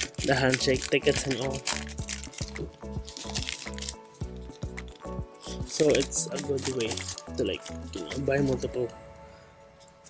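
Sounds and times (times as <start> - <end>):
plastic sleeve crinkling: 0.0 - 8.8
upbeat background music: 0.0 - 10.0.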